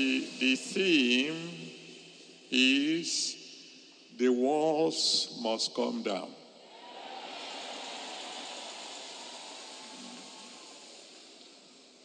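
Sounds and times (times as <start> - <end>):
crowd applauding and cheering: 6.6 - 12.0.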